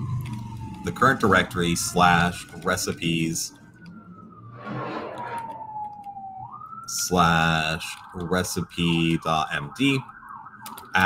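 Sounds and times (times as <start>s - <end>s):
fire engine siren wailing: 0.0s - 11.0s
rush of broad noise: 4.6s - 5.6s.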